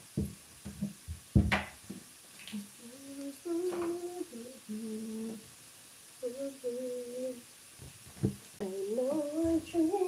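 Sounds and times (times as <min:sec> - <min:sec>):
woman humming a tune: 0:02.6 - 0:05.4, 0:06.2 - 0:07.4, 0:08.6 - 0:10.0.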